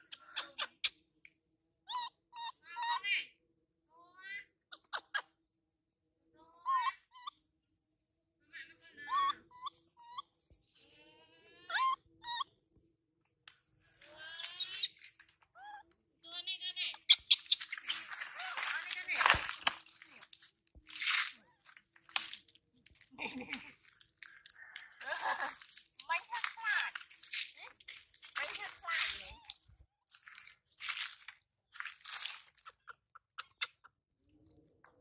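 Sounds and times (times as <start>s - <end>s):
baby monkey squealing: 1.9s - 3.0s, 6.6s - 7.4s, 9.0s - 10.4s, 11.5s - 12.5s, 14.3s - 15.0s, 17.0s - 19.4s
dry leaves crunching and rustling: 17.3s - 22.5s, 23.7s - 32.7s.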